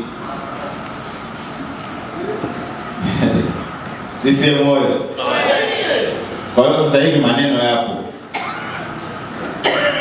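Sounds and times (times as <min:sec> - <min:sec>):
man coughing: 0:08.3 - 0:08.9, 0:09.6 - 0:10.0.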